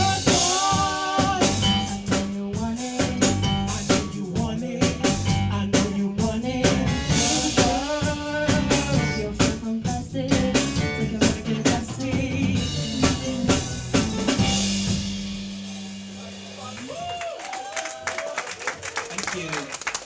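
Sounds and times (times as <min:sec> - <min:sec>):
live rock band playing: 0:00.0 - 0:17.6
drum kit: 0:00.0 - 0:18.3.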